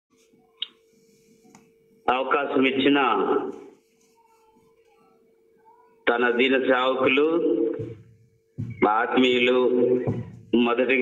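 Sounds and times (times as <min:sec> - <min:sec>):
faint steady hum: 0:00.1 - 0:11.0.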